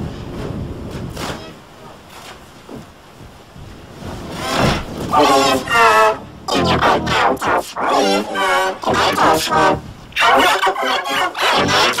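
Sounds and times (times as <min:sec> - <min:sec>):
pitch-shifted layered voice: 0:05.1 - 0:12.0.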